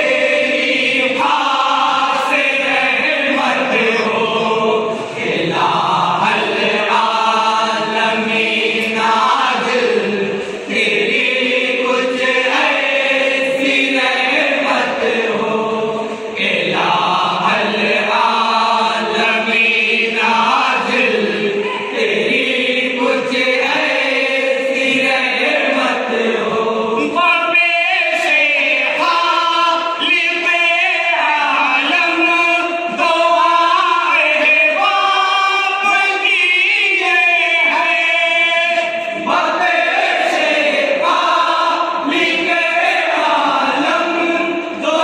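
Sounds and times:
men singing in unison: 0.0s - 45.0s.

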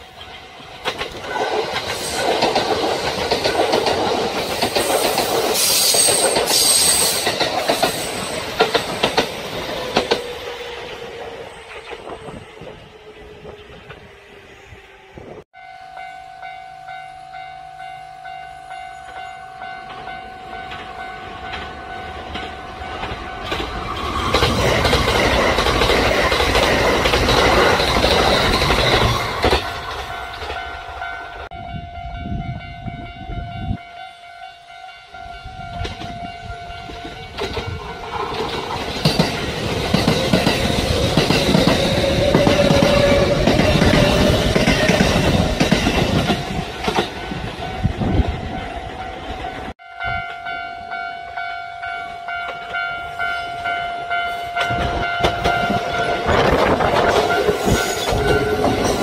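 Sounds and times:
electric train passing: 0.0s - 59.0s
wheels clattering over rail joints: 19.9s - 31.4s.

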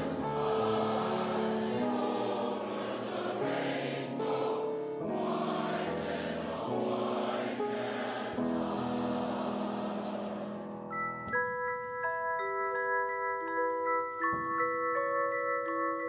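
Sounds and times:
mixed choir singing slow song: 0.0s - 10.9s.

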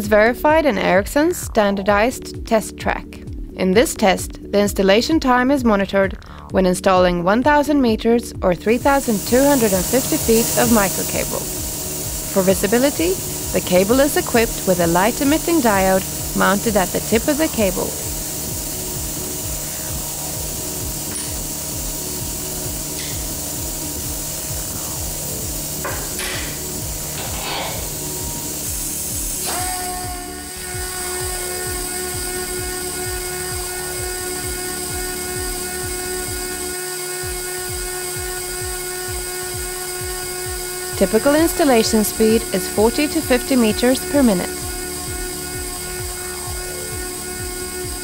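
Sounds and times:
cable blowing machine drone: 8.6s - 48.0s.

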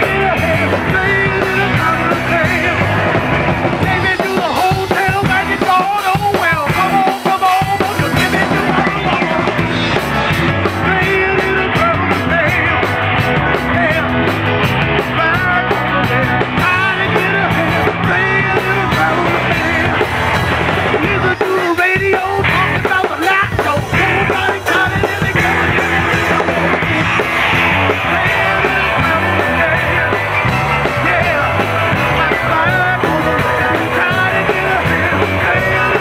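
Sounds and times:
drum kit with cymbals: 0.0s - 36.0s
electric bass guitar: 0.0s - 36.0s
man singing lead: 0.0s - 36.0s.

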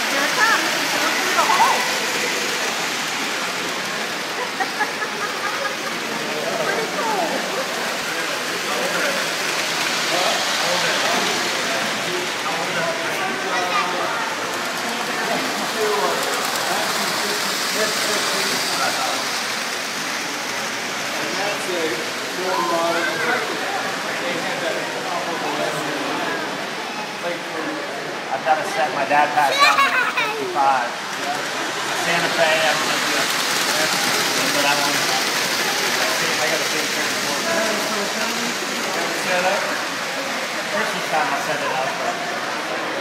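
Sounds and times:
toy train rolling: 0.0s - 27.5s, 29.2s - 43.0s
faint voices: 0.0s - 43.0s.

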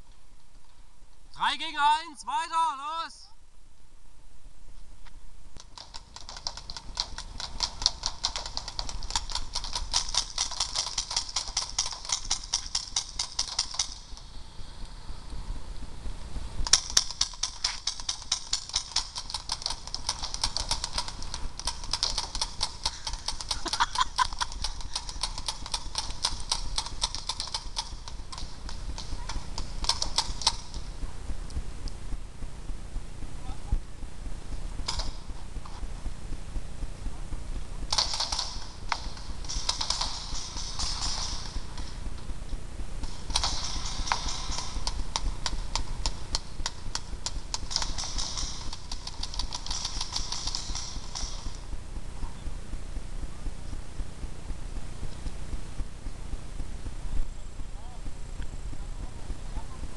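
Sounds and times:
paintball markers firing: 5.6s - 15.4s, 16.6s - 31.6s, 34.8s - 35.8s, 37.9s - 52.5s.

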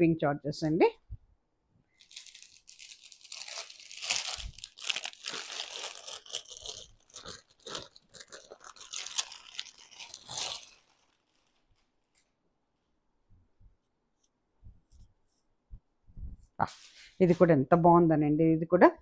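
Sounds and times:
plastic packaging crinkling: 1.9s - 12.3s.

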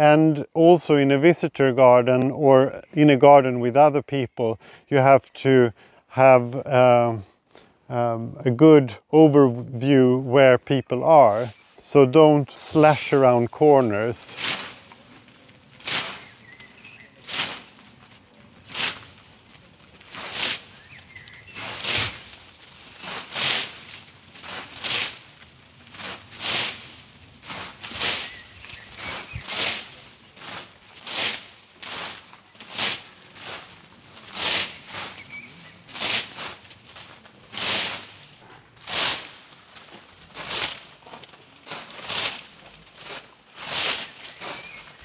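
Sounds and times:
pruning hook swishing through leaves: 14.3s - 15.0s, 15.8s - 17.7s, 20.1s - 22.3s, 23.0s - 25.2s, 25.9s - 33.7s, 41.7s - 45.0s.

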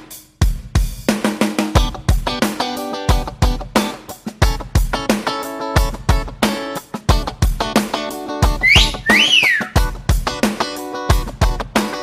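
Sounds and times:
strummed guitar music: 2.2s - 12.0s
wolf whistle: 8.6s - 9.9s.

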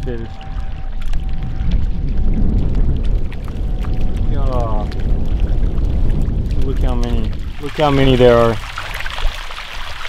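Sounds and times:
small water splashes: 0.0s - 10.0s
wind rumbling on microphone: 0.0s - 10.0s.

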